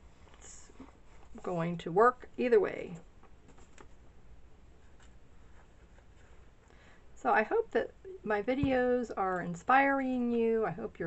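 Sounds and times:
paper page rustling: 0:03.4 - 0:04.0, 0:04.8 - 0:06.5.

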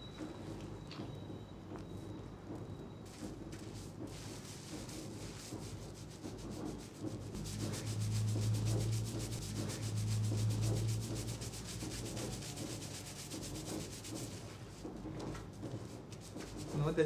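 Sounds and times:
low steady hum: 0:05.6 - 0:16.8.

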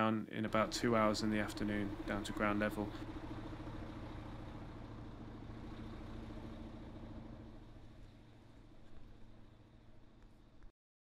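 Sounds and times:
engine idling: 0:00.4 - 0:10.7.

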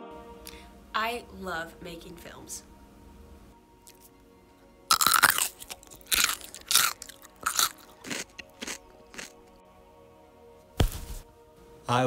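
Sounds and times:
person crunching and chewing potato: 0:03.8 - 0:04.2, 0:04.9 - 0:09.6.

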